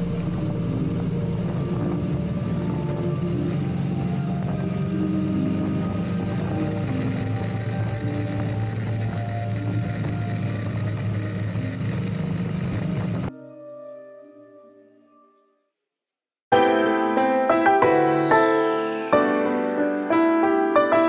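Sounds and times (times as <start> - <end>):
motorcycle engine: 0.0 - 13.3
soft piano music: 0.0 - 15.5, 16.5 - 21.0.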